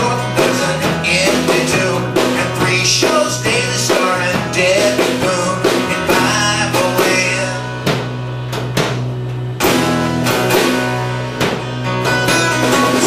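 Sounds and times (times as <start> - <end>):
electric guitar: 0.0 - 13.0
strummed acoustic guitar: 0.0 - 13.0
sharp drum hits: 7.8 - 13.0.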